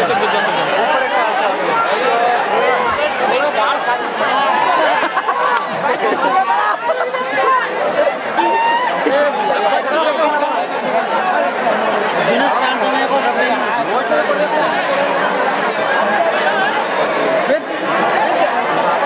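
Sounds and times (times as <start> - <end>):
loud crowd chatter: 0.0 - 19.0.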